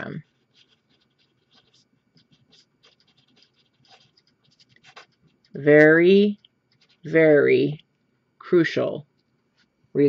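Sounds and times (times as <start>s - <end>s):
marker scratching on paper: 0.0s - 7.4s.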